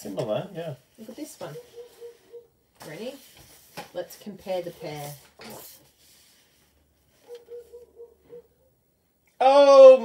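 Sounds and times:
paper sheets rustling: 0:02.8 - 0:07.4.

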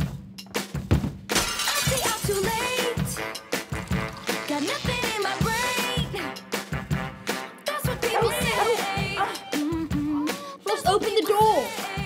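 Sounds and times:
glass shattering: 0:01.3 - 0:02.5, 0:03.8 - 0:05.4
trailer music: 0:02.4 - 0:10.2.

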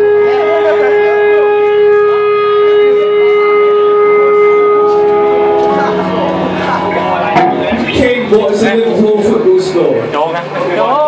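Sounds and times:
electric guitar amplifier feedback: 0:00.0 - 0:11.0.

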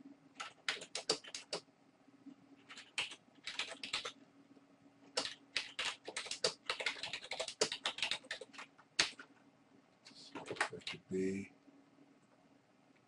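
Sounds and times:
typing on computer keyboard: 0:00.4 - 0:01.6, 0:02.6 - 0:04.2, 0:05.1 - 0:09.3, 0:10.3 - 0:11.0.

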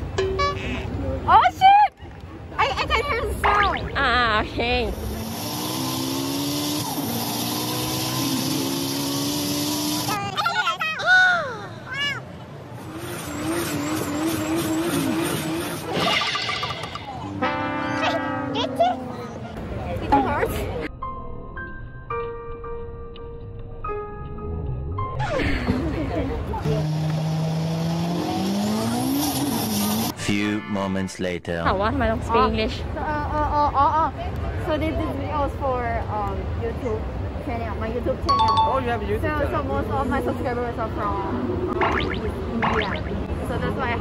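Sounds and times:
race car engine: 0:04.8 - 0:10.4, 0:12.5 - 0:16.0, 0:25.9 - 0:30.2.

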